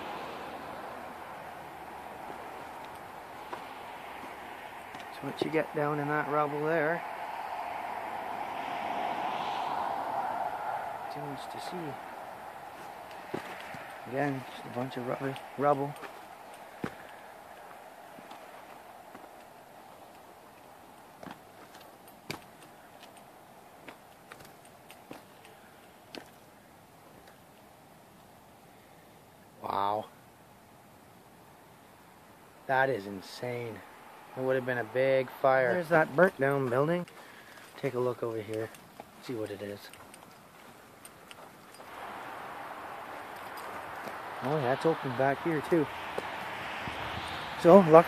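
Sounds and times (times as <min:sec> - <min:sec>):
rustling of dry grass: 0:00.0 - 0:27.7, 0:33.0 - 0:48.0
faint steady hiss: 0:00.0 - 0:48.0
footsteps crunching on debris: 0:02.2 - 0:05.9, 0:12.2 - 0:25.5.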